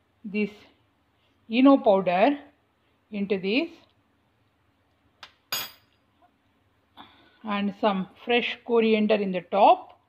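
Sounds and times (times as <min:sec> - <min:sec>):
kitchenware clinking on glass bowl: 0:05.5 - 0:05.9.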